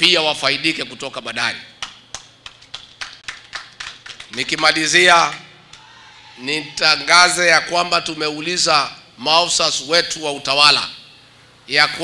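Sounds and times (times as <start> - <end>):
audience clapping: 1.8 - 5.9.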